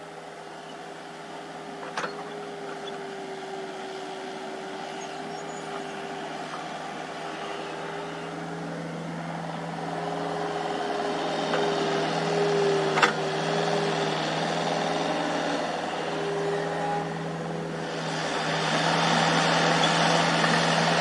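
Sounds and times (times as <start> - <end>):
excavator diesel engine: 0.0 - 21.0.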